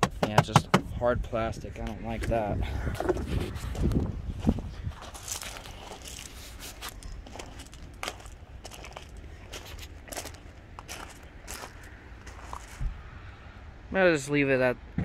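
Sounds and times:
low steady rumble: 0.8 - 15.0
footsteps crunching on gravel: 3.0 - 13.0.

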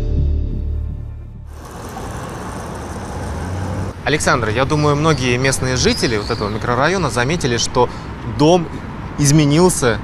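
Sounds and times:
cars driving past: 1.5 - 9.3.

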